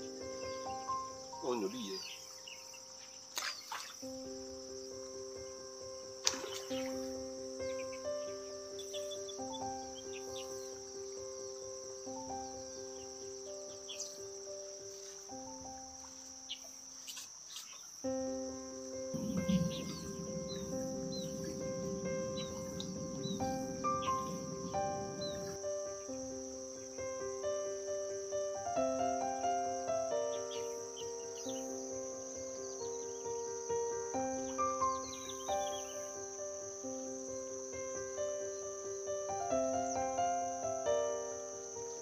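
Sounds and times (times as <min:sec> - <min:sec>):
high-pitched insect drone: 0:00.0 - 0:42.0
slow held music notes: 0:04.1 - 0:42.0
low rushing noise: 0:19.0 - 0:27.2.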